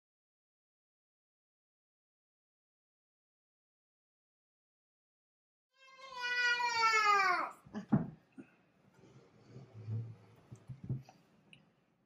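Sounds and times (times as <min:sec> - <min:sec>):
toddler crying: 0:05.8 - 0:07.6.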